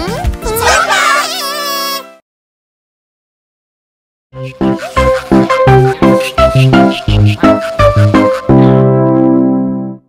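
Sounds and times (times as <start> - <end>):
cartoon character crying wail: 0.6 - 2.1.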